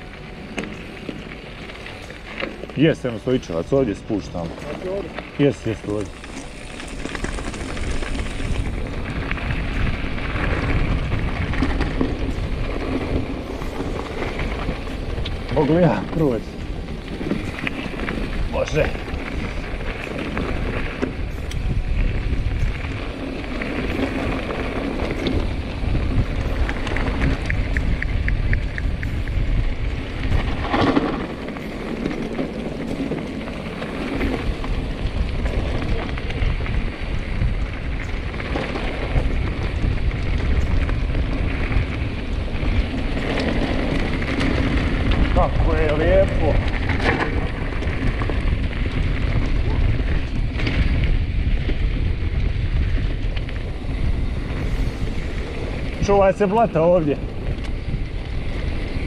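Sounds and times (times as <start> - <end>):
bike rattling over bumps: 0.0 - 59.0
tyres crunching over gravel: 0.0 - 59.0
wind buffeting microphone: 0.0 - 59.0.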